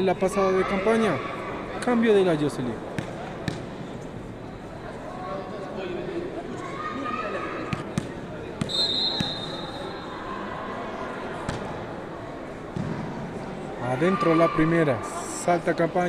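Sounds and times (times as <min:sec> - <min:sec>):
high steady whistle: 0:08.7 - 0:10.1.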